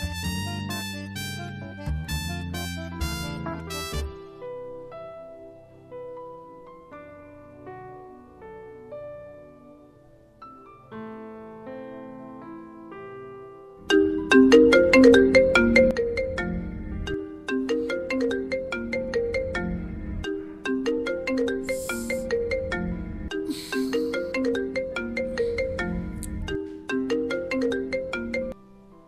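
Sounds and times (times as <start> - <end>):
mobile phone ringtone: 13.9 - 28.6.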